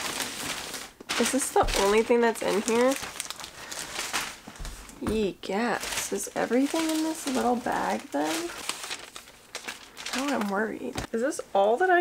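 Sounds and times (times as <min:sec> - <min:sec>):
shopping bag rustling: 0:00.0 - 0:11.1.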